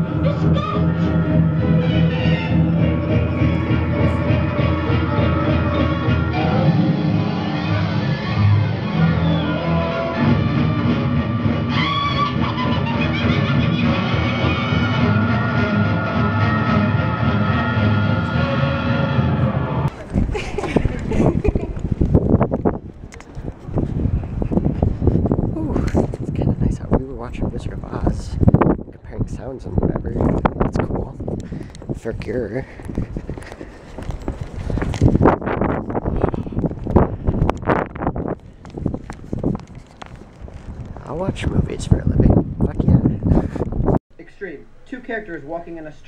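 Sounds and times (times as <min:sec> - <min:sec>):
film soundtrack over speakers: 0:00.0 - 0:19.9
quick footsteps on pavement: 0:19.9 - 0:26.4, 0:30.2 - 0:42.0
wind buffeting microphone: 0:19.9 - 0:44.0.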